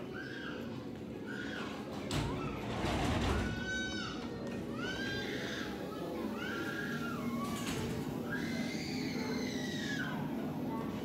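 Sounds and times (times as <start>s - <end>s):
children calling and squealing: 0.0s - 11.0s
murmur of busy indoor hall: 0.0s - 11.0s.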